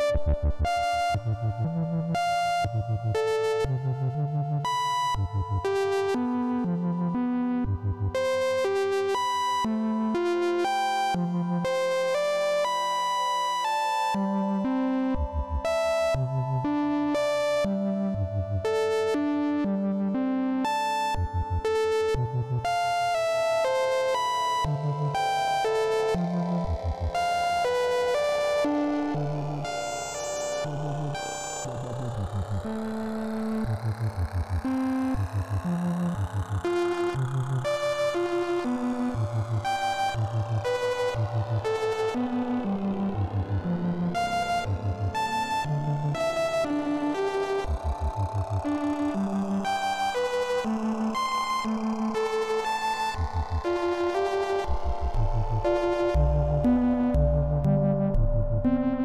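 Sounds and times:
modular synthesizer drone: 14.2s - 59.0s.

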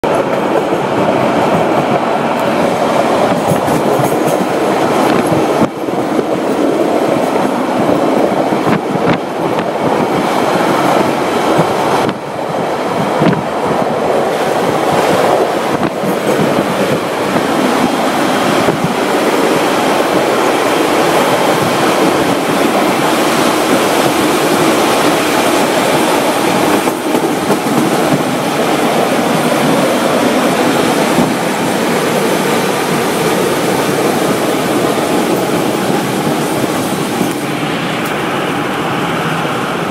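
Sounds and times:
train wheels rumbling on rails: 0.0s - 39.9s.

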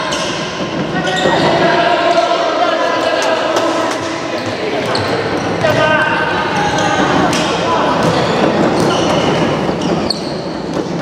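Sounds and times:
echoing sports hall sound: 0.0s - 11.0s.

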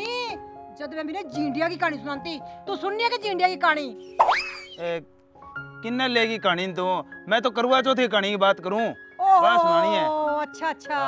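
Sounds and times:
background music with held notes: 0.0s - 11.0s
comic hit with rising whistle: 4.2s - 4.8s.

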